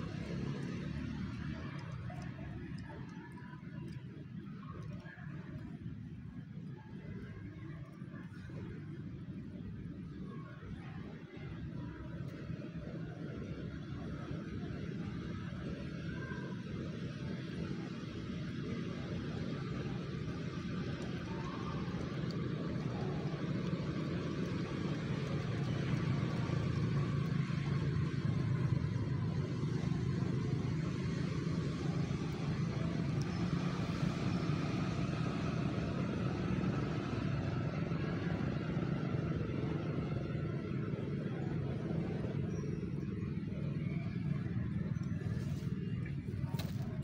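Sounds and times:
vehicle engine running: 0:00.0 - 0:03.3, 0:16.4 - 0:47.0.

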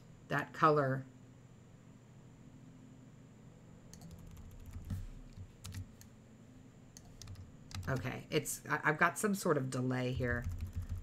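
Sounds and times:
low steady hum: 0:00.0 - 0:11.0
keyboard and mouse clicks: 0:03.9 - 0:06.1, 0:07.0 - 0:08.1, 0:10.3 - 0:11.0.

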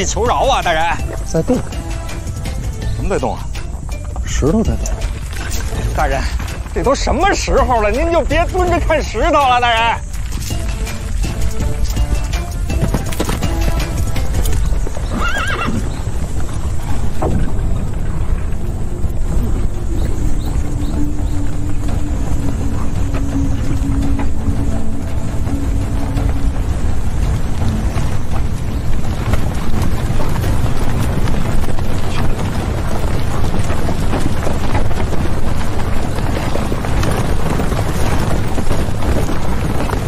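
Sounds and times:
galloping horse hooves rumble: 0:00.0 - 0:40.0
horse whinnying: 0:15.0 - 0:16.1.

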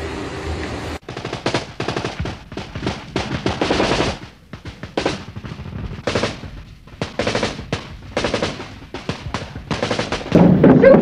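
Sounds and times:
automatic gunfire: 0:01.0 - 0:11.0.

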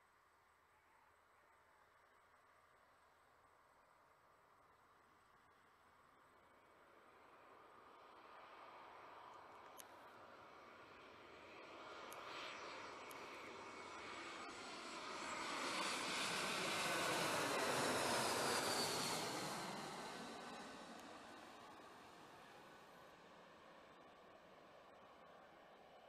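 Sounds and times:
jet airliner passing overhead: 0:06.6 - 0:26.0.

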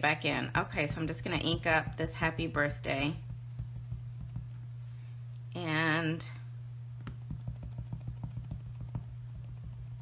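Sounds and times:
steady low hum: 0:00.0 - 0:10.0
rubber stamp tapping on ink pad: 0:03.2 - 0:04.6, 0:07.0 - 0:10.0.

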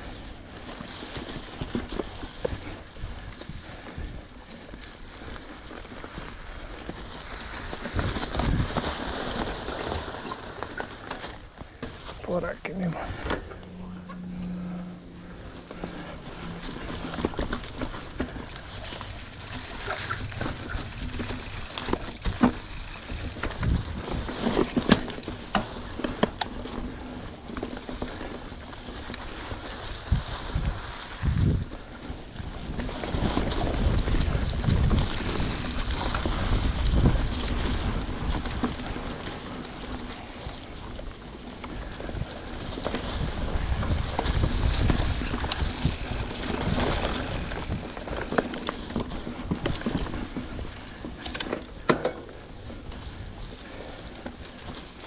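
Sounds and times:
bike rolling over dry leaves: 0:00.0 - 0:55.0
bike knocks and rattles: 0:05.9 - 0:12.2, 0:15.2 - 0:55.0
wind on microphone: 0:29.7 - 0:38.9, 0:41.8 - 0:51.0.

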